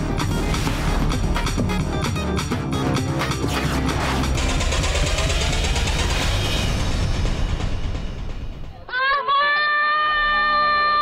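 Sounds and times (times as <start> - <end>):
deep bass drone: 0.0 - 8.7
whooshing rumble: 4.3 - 8.8.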